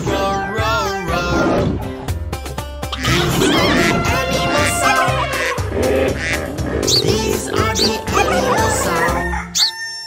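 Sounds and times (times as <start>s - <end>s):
bouncy children's song music: 0.0s - 9.5s
hens clucking: 2.9s - 9.4s
rooster crowing: 8.3s - 10.0s.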